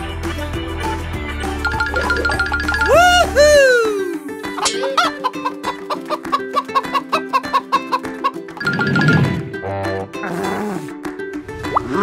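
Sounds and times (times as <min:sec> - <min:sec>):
children's background music: 0:00.0 - 0:12.0
cartoon chicken clucking: 0:04.6 - 0:08.8.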